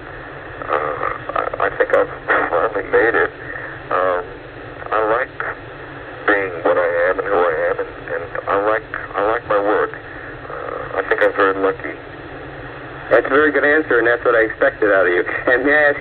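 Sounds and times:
person talking over telephone line: 0.6s - 5.6s, 6.2s - 12.0s, 13.1s - 16.0s.

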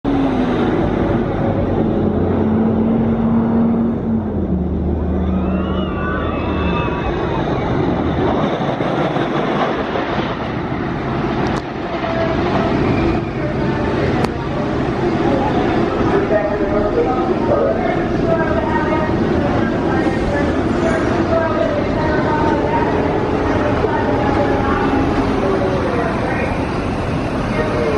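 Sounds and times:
roller coaster train rumbling: 0.0s - 27.9s
low hum falling in pitch: 0.1s - 8.4s.

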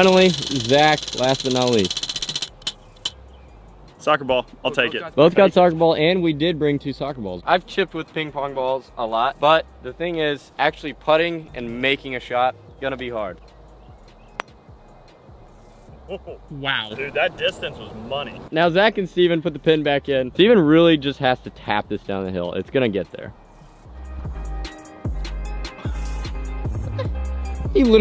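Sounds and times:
prize wheel pointer ticking: 0.0s - 3.2s
faint background music: 0.0s - 28.0s
putter striking ping pong ball: 14.3s - 14.6s.

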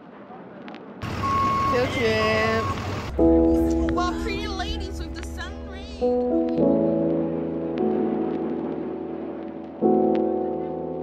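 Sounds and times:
street noise: 0.0s - 11.0s
bus engine hum: 1.0s - 5.9s
steady beep: 1.2s - 2.9s.

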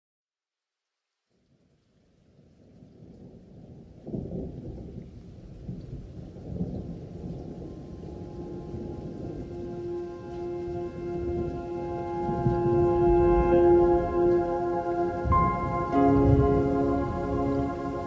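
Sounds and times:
deep thunder-like rumbling: 5.6s - 18.0s
held chord intro music: 8.1s - 18.0s.

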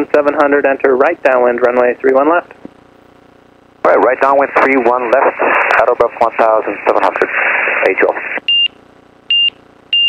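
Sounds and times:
voice over aviation radio: 3.9s - 8.4s.

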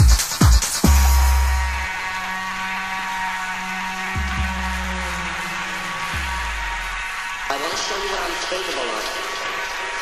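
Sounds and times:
sustained synth chords: 0.0s - 10.0s.

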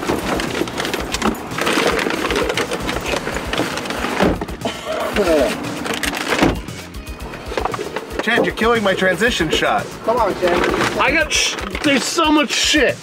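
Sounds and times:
bags rustling and clunking: 0.0s - 12.7s.

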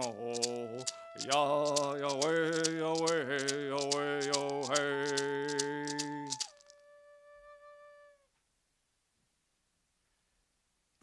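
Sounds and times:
wooden flute note: 0.0s - 8.3s.

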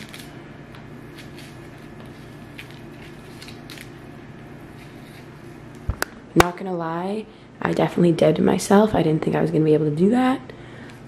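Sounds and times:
banana peel crackling and tearing: 0.0s - 6.1s.

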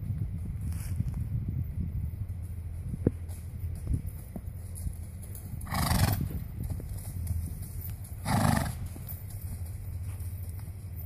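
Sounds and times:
horse snorting: 5.6s - 6.4s, 8.2s - 8.9s.

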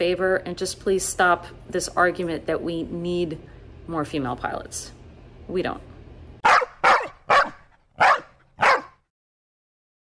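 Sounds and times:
dog barking: 6.4s - 9.1s.

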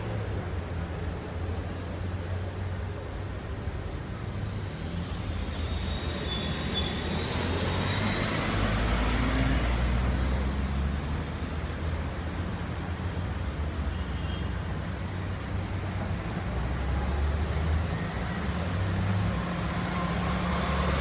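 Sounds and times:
cars and bus driving: 0.0s - 21.0s.

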